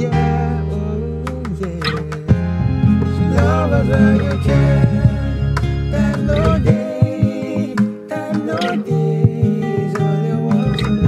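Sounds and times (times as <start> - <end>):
acoustic guitar: 0.0 - 11.0
keyboard: 0.0 - 11.0.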